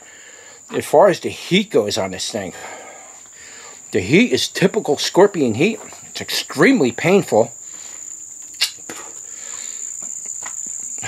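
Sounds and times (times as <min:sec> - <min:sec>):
insect trilling: 0:00.0 - 0:11.0.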